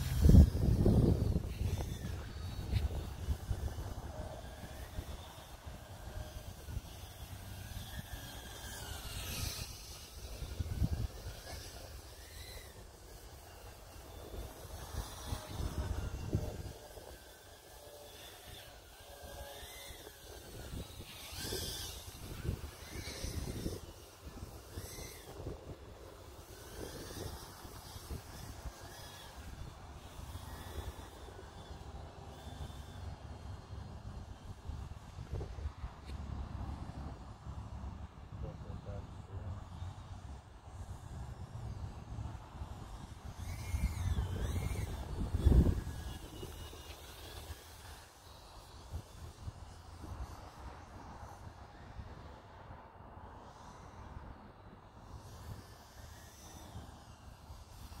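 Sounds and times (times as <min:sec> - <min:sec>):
wind on microphone: 0:00.0 - 0:37.0, 0:40.1 - 0:52.4.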